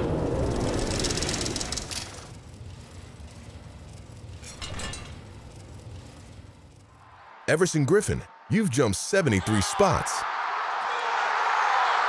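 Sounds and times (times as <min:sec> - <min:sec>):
fast mechanical rattle: 0:00.0 - 0:07.1.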